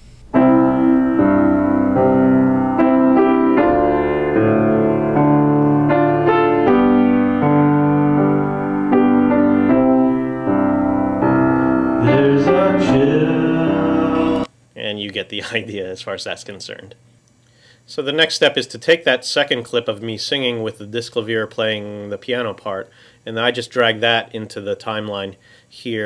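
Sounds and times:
piano chords and notes: 0.0s - 14.5s
man singing: 12.0s - 14.5s.

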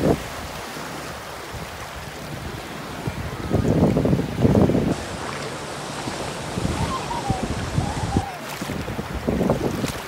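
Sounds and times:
seawater washing at shore: 0.0s - 10.0s
water splashes: 0.0s - 10.0s
wind buffeting microphone: 0.0s - 10.0s.

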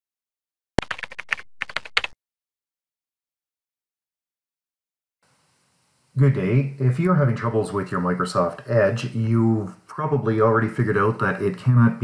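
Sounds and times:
keyboard typing: 0.8s - 2.2s.

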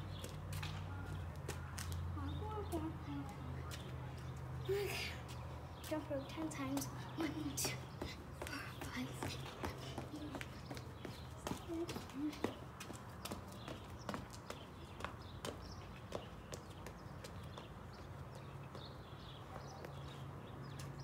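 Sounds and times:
sneakers slapping concrete: 0.0s - 2.1s, 3.3s - 4.5s, 5.2s - 21.0s.

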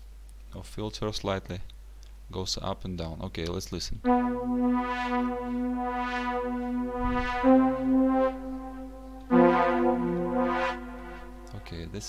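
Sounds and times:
sawtooth synth melody: 4.1s - 12.0s.

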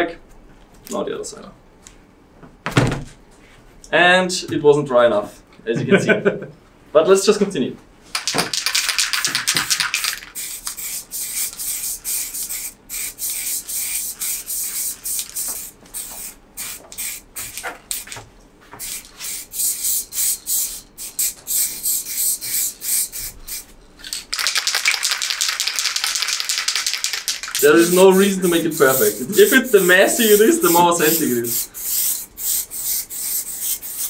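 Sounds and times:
spray paint cans hissing: 8.2s - 18.2s, 18.8s - 34.0s.

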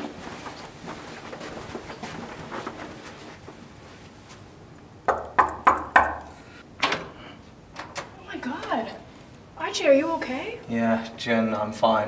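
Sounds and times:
knocking on a wooden door: 5.1s - 6.2s.

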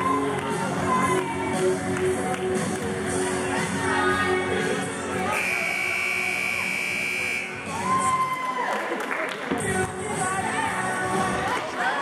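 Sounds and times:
scoreboard buzzer: 5.4s - 7.5s.

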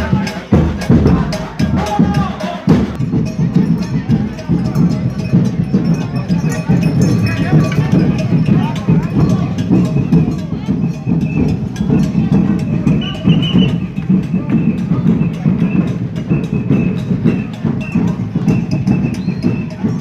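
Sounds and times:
people talking: 0.0s - 20.0s
quick drum beat: 0.0s - 20.0s.

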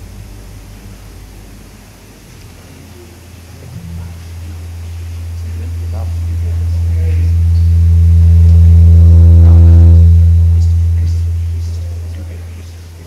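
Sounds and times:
electrical hum through sound system: 0.0s - 13.0s.

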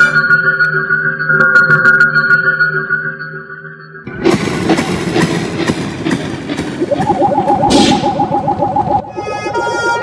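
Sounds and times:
rapidly stuttering tone: 4.1s - 10.0s.

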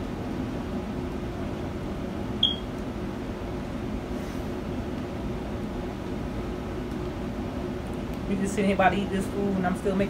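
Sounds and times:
short high beep: 2.4s - 2.7s.

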